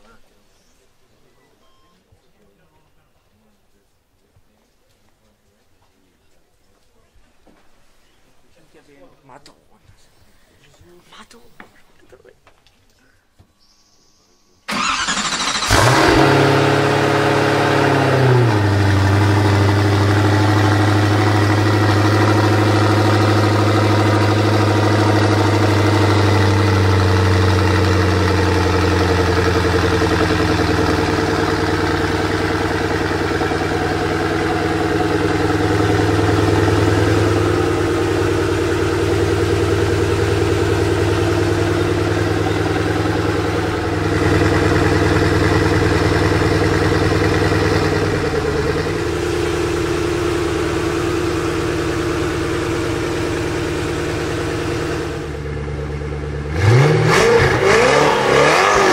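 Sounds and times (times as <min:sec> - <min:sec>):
engine starter cranking: 0:14.7 - 0:17.0
car engine revving and idling: 0:14.7 - 0:58.9.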